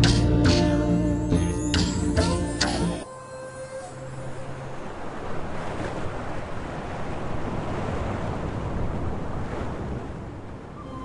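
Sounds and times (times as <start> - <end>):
waves breaking on beach: 3.9 - 11.0.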